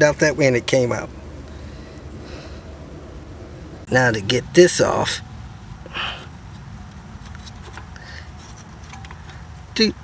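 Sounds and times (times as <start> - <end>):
low steady rumble: 0.0 - 10.0
metallic clicks and scrapes: 6.2 - 9.5.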